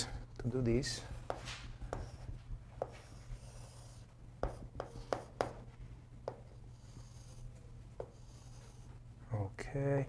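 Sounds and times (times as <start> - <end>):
low room hum: 0.0 - 10.0
chalk striking on chalkboard: 1.2 - 8.9.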